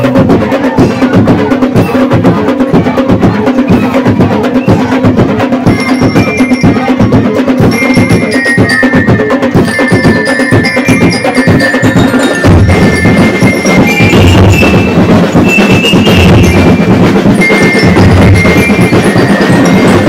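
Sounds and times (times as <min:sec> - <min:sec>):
bass and snare drums: 0:00.0 - 0:20.0
bell lyres ringing melody: 0:05.6 - 0:20.0.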